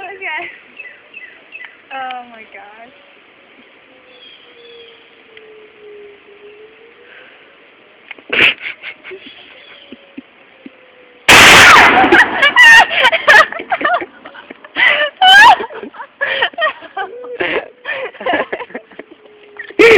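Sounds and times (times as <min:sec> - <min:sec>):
shotgun blast: 0:11.3 - 0:12.6.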